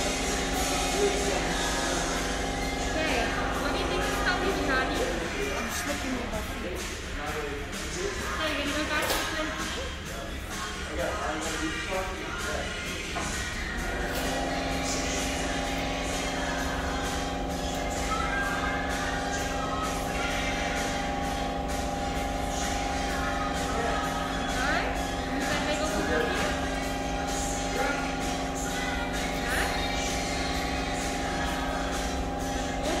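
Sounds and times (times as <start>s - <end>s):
electric fan whirring: 0.0s - 33.0s
steady mechanical hum: 0.0s - 33.0s.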